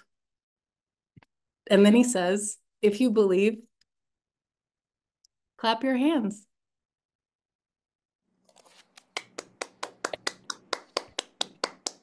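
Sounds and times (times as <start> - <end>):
hands clapping: 8.7 - 12.0.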